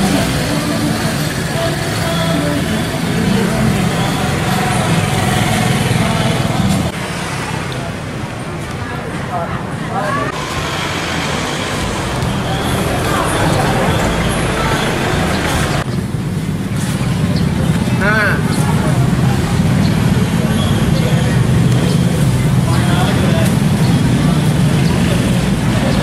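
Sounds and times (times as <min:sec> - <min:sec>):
vehicle engine running: 0:00.0 - 0:07.0, 0:10.3 - 0:26.0
people talking: 0:00.0 - 0:15.9, 0:16.9 - 0:26.0
street traffic: 0:00.0 - 0:26.0.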